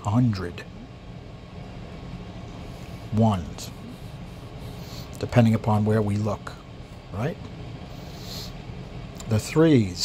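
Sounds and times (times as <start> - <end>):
low room hum: 0.0 - 10.0.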